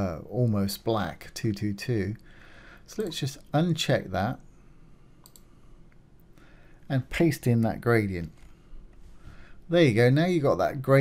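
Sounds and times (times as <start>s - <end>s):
computer mouse clicks: 5.2s - 5.5s.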